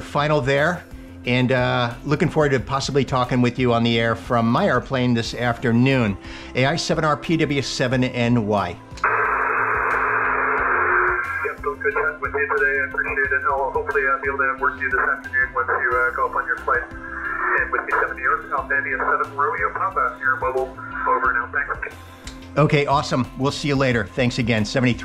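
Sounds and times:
radio receiver hiss: 9.0s - 12.0s
man talking over radio: 11.3s - 22.0s.

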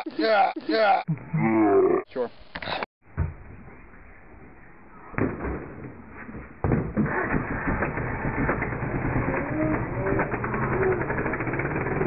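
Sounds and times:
atv engine running: 7.1s - 12.0s.

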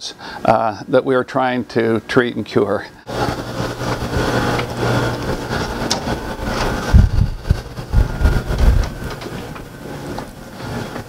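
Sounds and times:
ventilation mechanical rumble: 0.0s - 11.0s
low thumps from walking: 6.4s - 9.2s.

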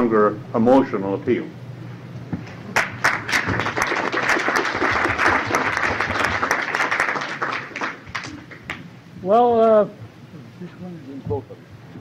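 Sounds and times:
audience applauding: 2.7s - 8.8s.

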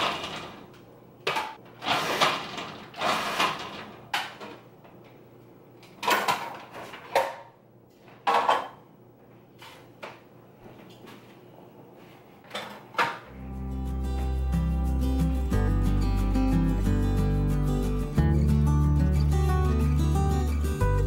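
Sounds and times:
plastic parts clunking and rattling: 0.0s - 4.7s, 5.8s - 7.5s.

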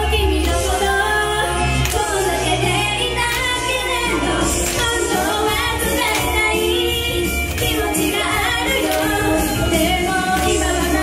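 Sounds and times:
pop backing music: 0.0s - 11.0s
woman singing pop song: 0.0s - 11.0s.

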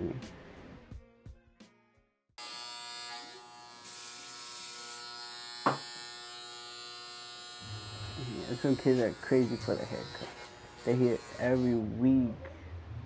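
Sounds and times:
electric hair clippers buzzing: 2.4s - 11.9s.

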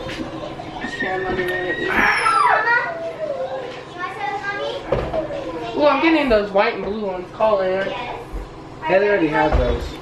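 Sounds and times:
children chattering: 0.0s - 6.3s.

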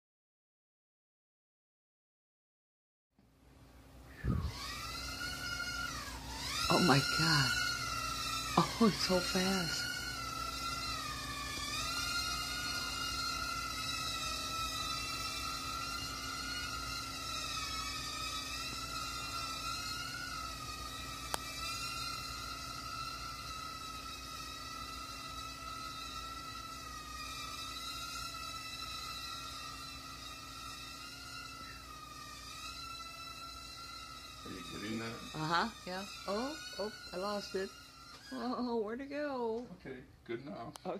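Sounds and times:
quadcopter motors whining: 3.7s - 40.9s.

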